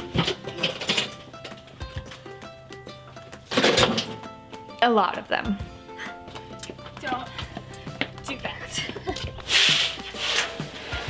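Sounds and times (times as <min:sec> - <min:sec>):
wheelbarrow crashing over: 0:00.0 - 0:01.7, 0:03.4 - 0:04.3, 0:09.4 - 0:11.0
background music: 0:00.0 - 0:11.0.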